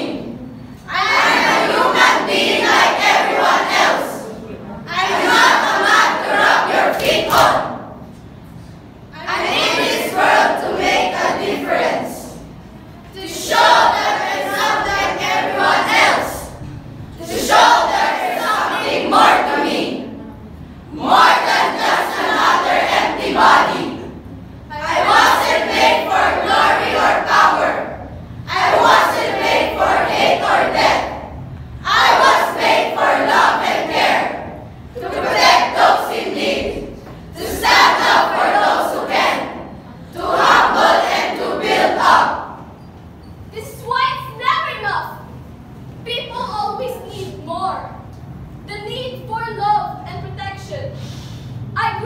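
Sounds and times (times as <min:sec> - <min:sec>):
young voices declaiming in unison: 0:00.0 - 0:08.2, 0:08.8 - 0:42.8.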